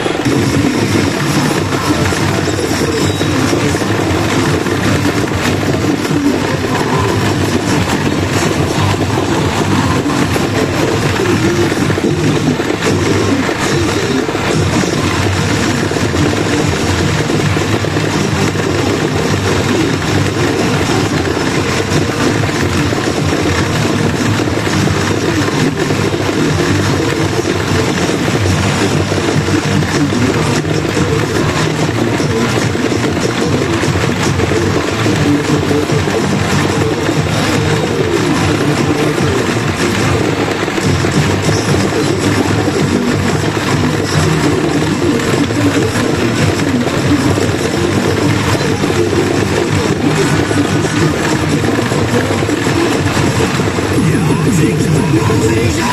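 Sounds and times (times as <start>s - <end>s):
pachinko machine music and effects: 0.0s - 55.9s
steady dense din: 0.0s - 55.9s.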